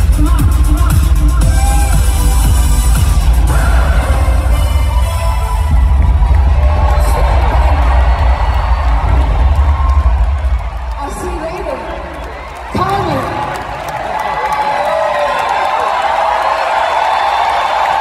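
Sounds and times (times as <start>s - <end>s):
dance-pop music with heavy bass: 0.0s - 8.2s
crowd cheering: 1.4s - 18.0s.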